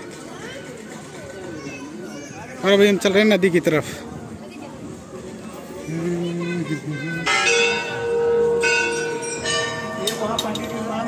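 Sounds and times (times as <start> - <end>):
temple bell ringing: 7.2 - 11.0.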